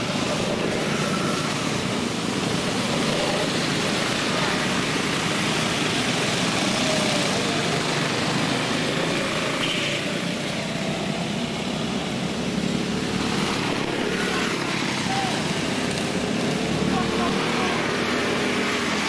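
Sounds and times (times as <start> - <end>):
go-kart engines buzzing: 0.0 - 19.0.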